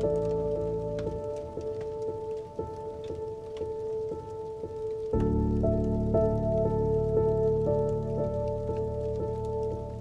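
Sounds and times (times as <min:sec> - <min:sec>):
rain pattering: 0:00.0 - 0:10.0
slow melancholic piano: 0:00.0 - 0:10.0.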